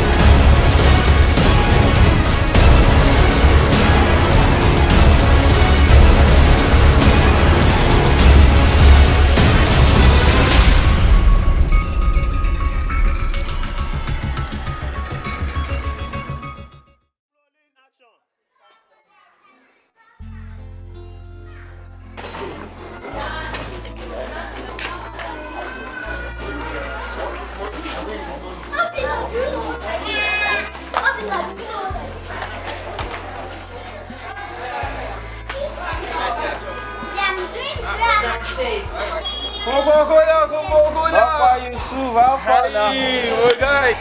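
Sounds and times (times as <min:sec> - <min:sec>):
background music with bass: 0:00.0 - 0:16.6
children talking and playing: 0:18.4 - 0:44.0.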